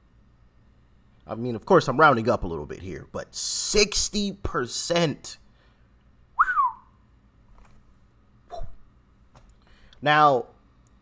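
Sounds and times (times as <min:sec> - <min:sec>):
man whistling: 0:06.4 - 0:07.0.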